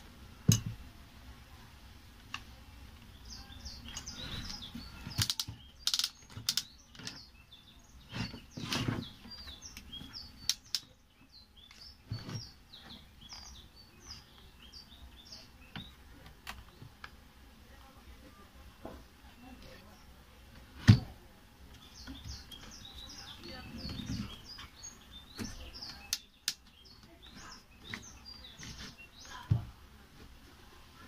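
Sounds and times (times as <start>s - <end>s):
knocks and clatter of tool parts: 0.5s - 0.8s
small birds chirping: 1.5s - 31.0s.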